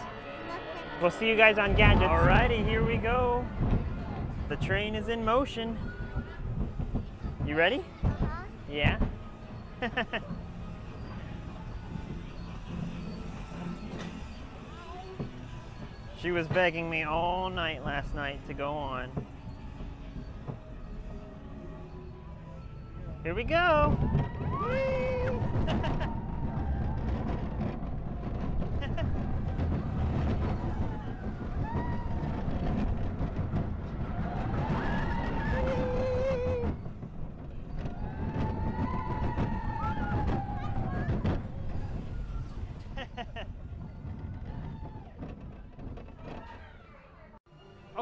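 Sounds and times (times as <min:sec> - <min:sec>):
roller coaster rumbling on track: 0:00.0 - 0:48.0
wind buffeting microphone: 0:01.4 - 0:09.8, 0:22.9 - 0:46.7
riders squealing and shouting: 0:34.2 - 0:36.8.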